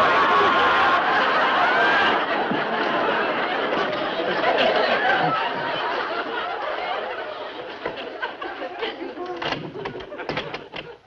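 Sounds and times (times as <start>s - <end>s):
loud laughter: 0.0s - 11.0s.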